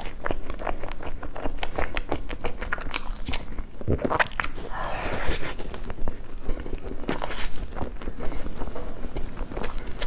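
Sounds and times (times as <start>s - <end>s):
wet chewing and mouth clicks: 0.0s - 10.0s.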